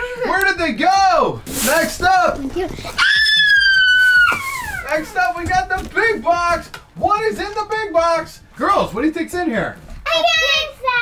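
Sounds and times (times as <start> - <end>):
girl squealing: 2.9 - 4.9.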